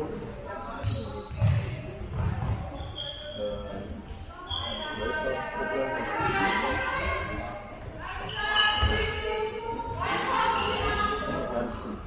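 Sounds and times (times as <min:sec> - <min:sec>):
ball bouncing on court floor: 0:00.8 - 0:03.0
shoe squeaks: 0:00.8 - 0:05.2, 0:08.2 - 0:09.3, 0:10.2 - 0:11.3.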